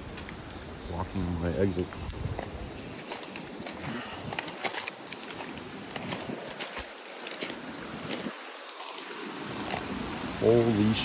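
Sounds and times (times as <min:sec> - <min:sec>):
footsteps crunching through leaves: 0:01.9 - 0:10.2
twigs snapping: 0:02.4 - 0:09.9.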